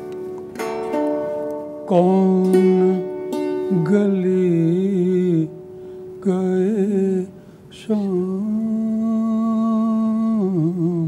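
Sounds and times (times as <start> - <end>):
man singing wordless note: 1.9 - 5.6, 6.2 - 11.0.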